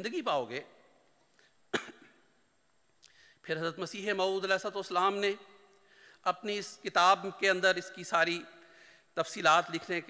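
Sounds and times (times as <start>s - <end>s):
man coughing: 1.7s - 2.3s.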